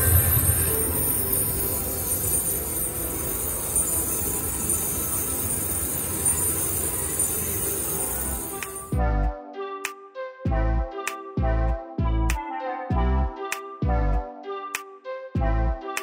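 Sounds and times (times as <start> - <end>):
slot machine electronic jingle: 0.0 - 9.0.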